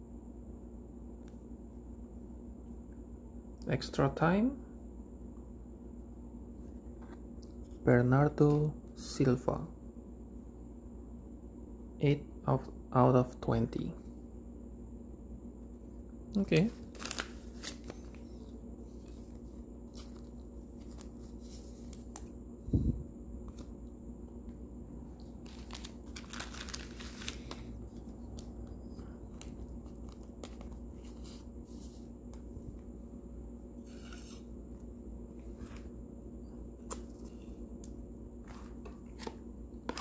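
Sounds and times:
low hum: 13.9s - 40.0s
plastic sleeve crinkling: 16.5s - 18.2s, 25.2s - 28.6s, 29.2s - 31.8s.

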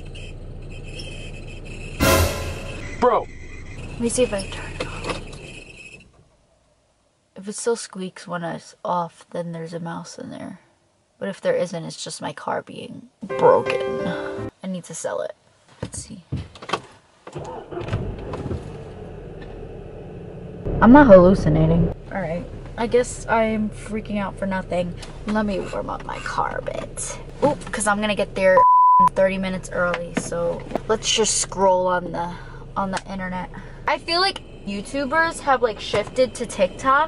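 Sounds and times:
high-pitched squeaks: 0.0s - 6.0s
car engine idling: 17.7s - 28.5s, 29.2s - 37.0s.

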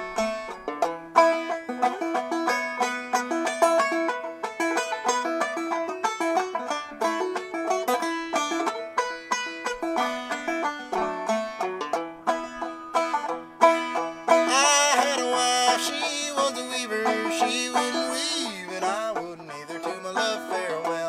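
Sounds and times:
banjo plucked notes: 0.0s - 21.0s.

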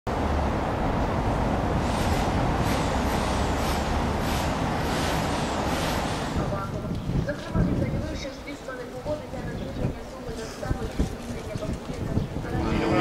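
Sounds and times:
street noise with low rumble: 0.1s - 13.0s.

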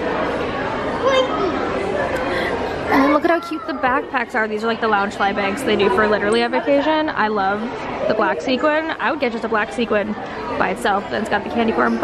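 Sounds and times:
background hubbub: 0.0s - 12.0s
indistinct chatter: 0.0s - 12.0s.

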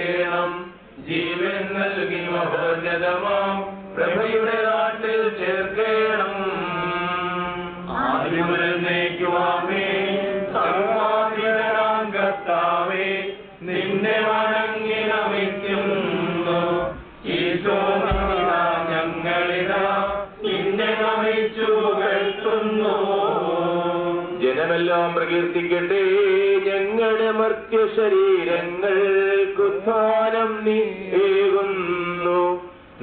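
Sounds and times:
prayers chanted: 0.0s - 33.0s.

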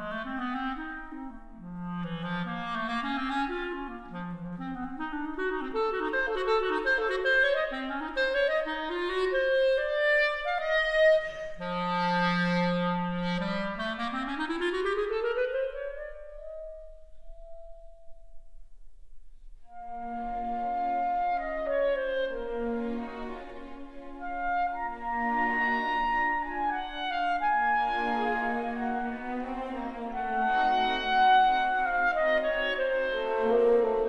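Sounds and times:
solo clarinet: 0.0s - 18.6s, 19.6s - 34.0s.

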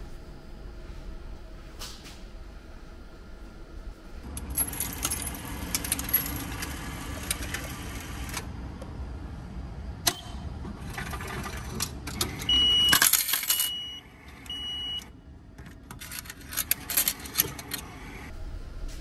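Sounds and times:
train low rumble: 0.0s - 12.3s, 17.6s - 19.0s
electronic beep: 12.5s - 13.0s, 13.6s - 15.1s.

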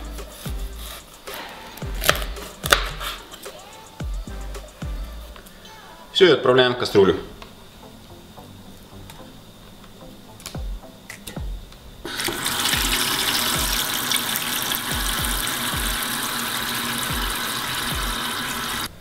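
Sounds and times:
tap water running into pot: 12.1s - 18.9s.

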